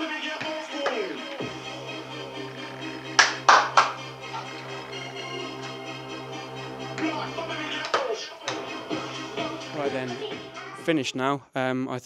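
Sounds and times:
house music: 0:00.0 - 0:11.0
loud hand claps: 0:03.2 - 0:04.0.

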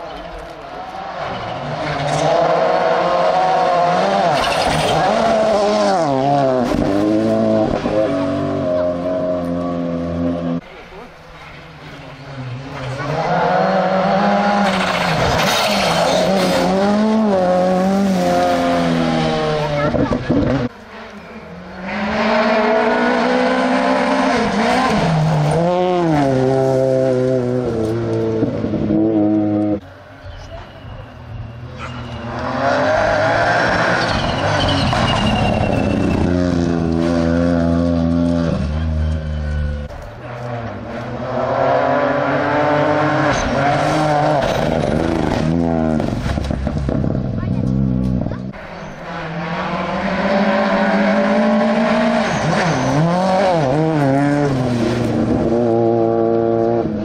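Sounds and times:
rally cars passing at full throttle: 0:00.0 - 0:57.0.

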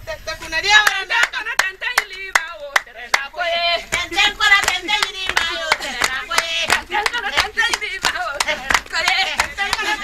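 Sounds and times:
women singing: 0:00.0 - 0:10.0
rhythmic hand-clapping: 0:00.7 - 0:10.0.

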